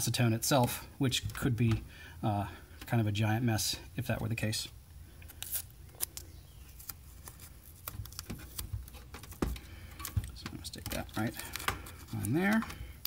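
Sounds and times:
hands handling tape on plastic: 5.2s - 13.0s.

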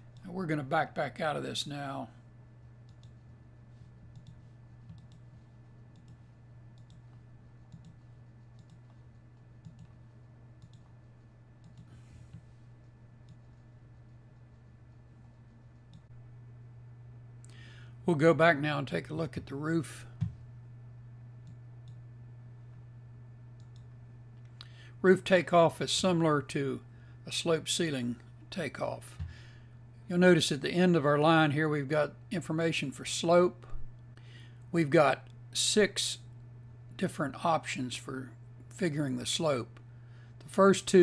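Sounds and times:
low steady hum: 0.0s - 41.0s
faint computer mouse clicks: 4.1s - 5.3s, 6.8s - 7.1s, 7.7s - 8.0s, 8.6s - 9.0s, 9.6s - 10.0s, 10.6s - 10.9s, 23.6s - 23.9s.

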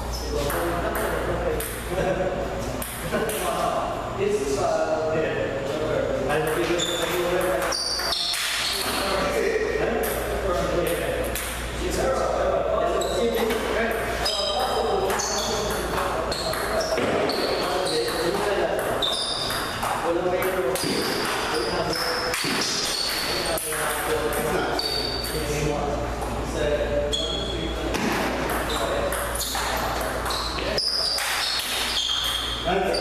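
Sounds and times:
people talking: 0.0s - 33.0s.

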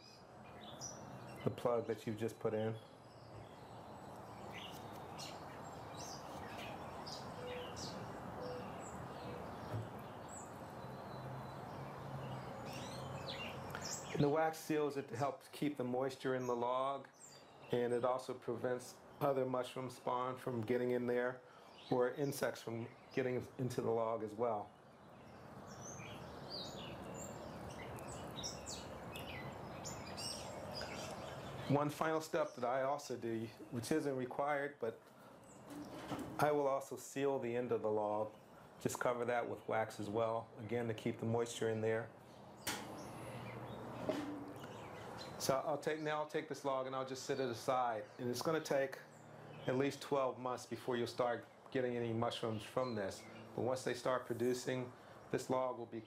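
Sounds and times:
outdoor background hiss: 0.0s - 56.0s
small birds chirping: 0.0s - 56.0s.

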